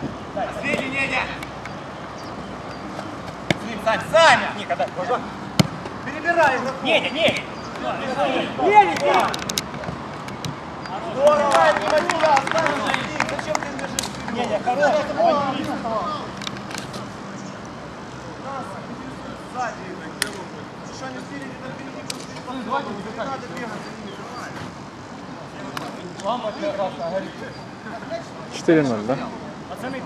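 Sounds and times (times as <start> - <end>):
players calling and shouting: 0.0 - 30.0
sharp knocks: 5.6 - 5.9.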